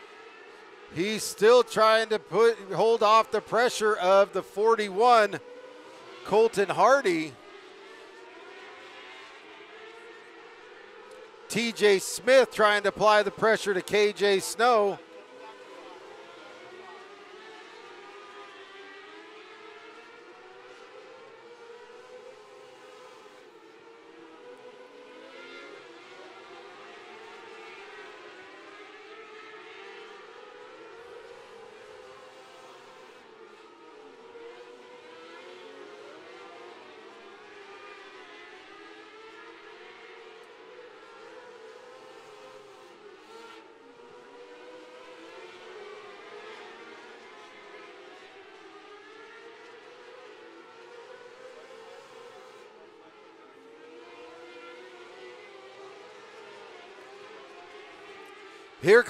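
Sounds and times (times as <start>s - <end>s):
racing car engines droning: 0.0s - 59.0s.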